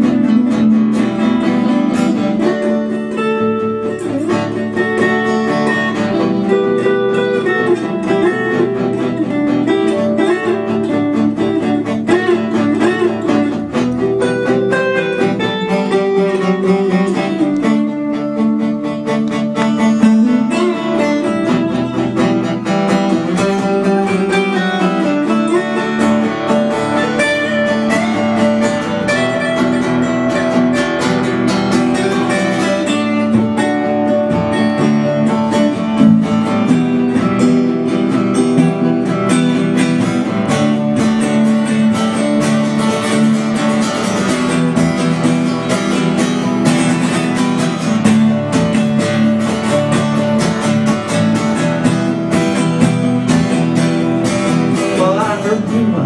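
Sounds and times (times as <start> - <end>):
acoustic guitar strumming: 0.0 - 56.0
quick picked guitar notes: 0.0 - 56.0.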